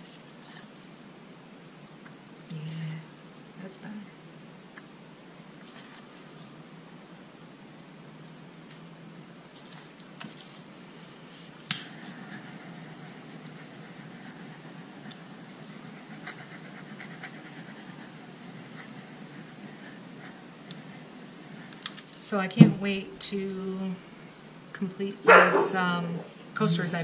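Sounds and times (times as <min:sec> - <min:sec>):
torch flame hissing: 0:11.0 - 0:23.1
butane torch clicking on: 0:11.6 - 0:15.8, 0:18.6 - 0:22.8.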